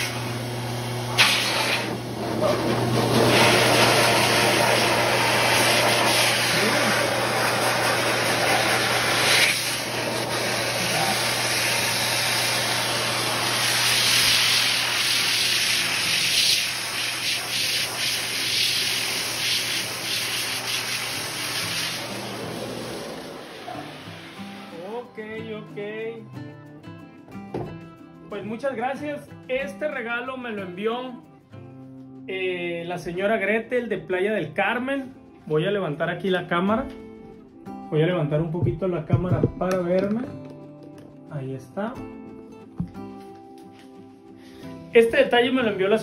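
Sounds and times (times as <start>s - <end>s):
dryer blowing air: 0.0s - 24.9s.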